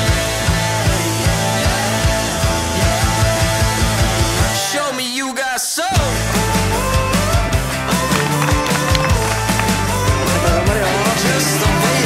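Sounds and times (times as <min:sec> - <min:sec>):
drum beat and bass: 0:00.0 - 0:04.6, 0:06.0 - 0:12.0
person singing: 0:00.0 - 0:12.0.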